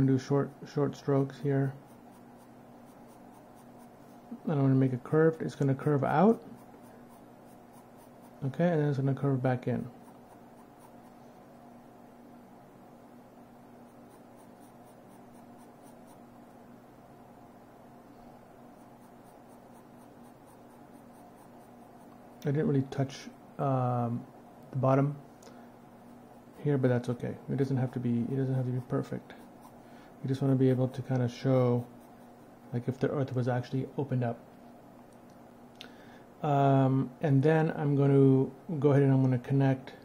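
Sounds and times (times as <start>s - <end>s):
faint steady hum: 0.0s - 40.0s
pencil strokes on paper: 0.9s - 4.4s, 5.1s - 11.3s, 13.8s - 16.6s, 18.7s - 22.2s, 26.0s - 32.6s.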